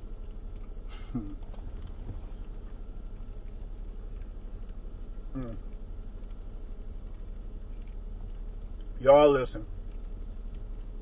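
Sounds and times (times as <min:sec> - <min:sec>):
low hum in car cabin: 0:00.0 - 0:11.0
man humming mm of approval: 0:00.9 - 0:01.5, 0:05.3 - 0:05.7.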